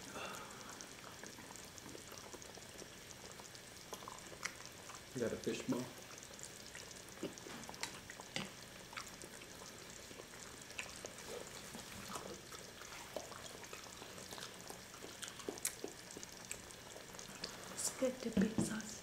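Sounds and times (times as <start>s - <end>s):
soft chewing: 0.0s - 18.2s
hiss of food cooking: 0.0s - 19.0s.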